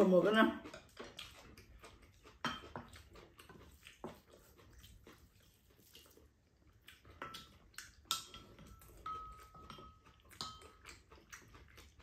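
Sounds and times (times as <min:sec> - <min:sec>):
chewing: 0:00.0 - 0:12.0.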